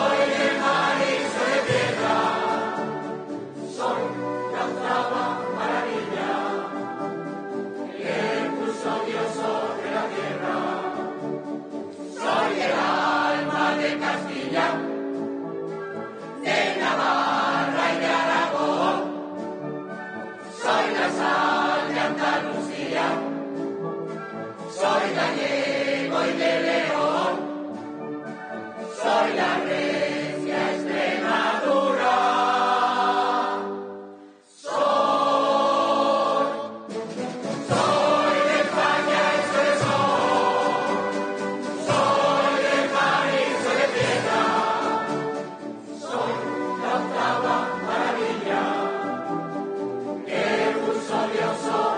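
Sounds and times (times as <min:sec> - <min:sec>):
mixed choir singing: 0:00.0 - 0:15.4, 0:16.2 - 0:19.5, 0:20.4 - 0:23.7, 0:24.5 - 0:27.8, 0:28.8 - 0:51.9
wind band accompanying: 0:00.0 - 0:51.9.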